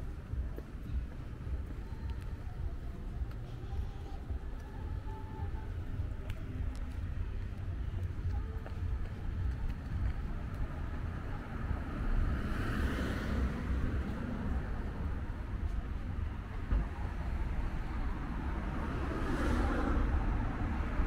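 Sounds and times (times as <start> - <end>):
traffic rumble: 0.0 - 21.0.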